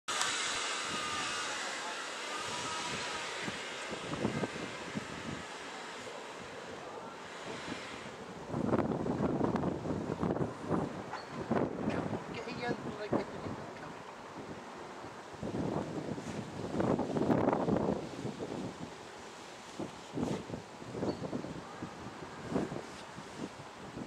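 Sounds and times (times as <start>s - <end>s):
broad rushing noise: 0.1s - 24.0s
wind buffeting microphone: 0.1s - 24.0s.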